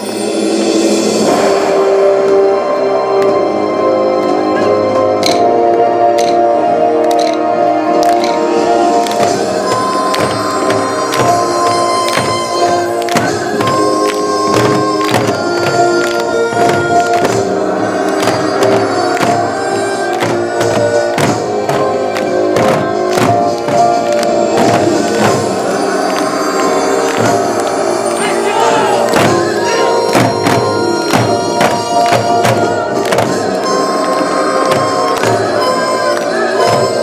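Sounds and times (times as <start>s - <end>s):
drum strokes in driving rhythm: 8.2s - 27.7s, 28.3s - 35.7s.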